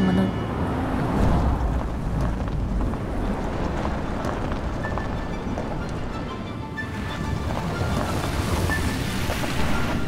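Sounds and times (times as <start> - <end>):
deep rumble: 0.4 - 6.2
rushing wind-like noise: 0.5 - 10.0.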